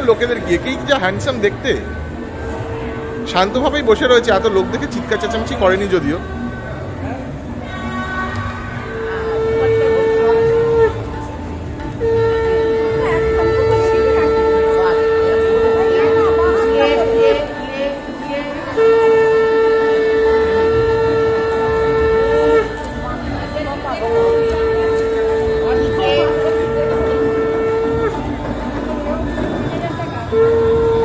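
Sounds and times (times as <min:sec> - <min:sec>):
conch shells blown together: 0:08.6 - 0:23.4, 0:24.0 - 0:31.0.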